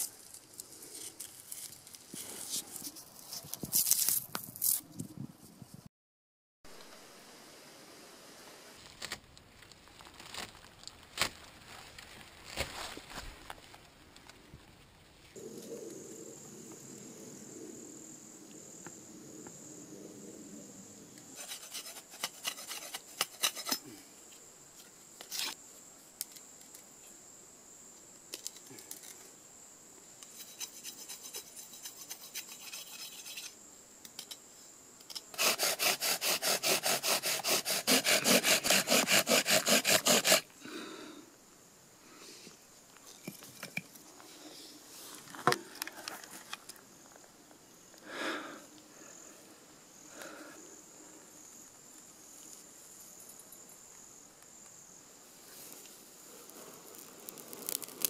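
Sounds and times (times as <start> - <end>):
knife carving wood: 21.4 - 23.8, 35.3 - 40.5, 56.9 - 58.0
bow drill spindle grinding: 35.3 - 40.4.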